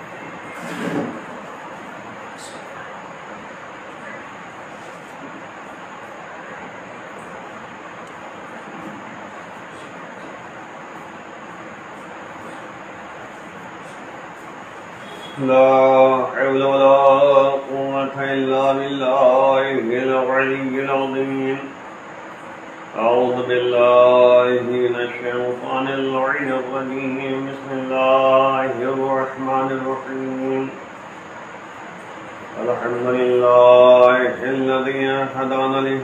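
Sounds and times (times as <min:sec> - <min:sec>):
man chanting: 0:15.1 - 0:21.8, 0:22.9 - 0:30.8, 0:32.5 - 0:36.0.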